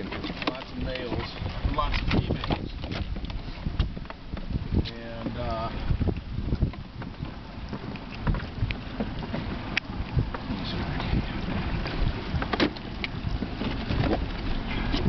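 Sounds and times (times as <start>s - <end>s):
water lapping against boat hull: 0.0s - 15.0s
wind buffeting microphone: 0.0s - 15.0s.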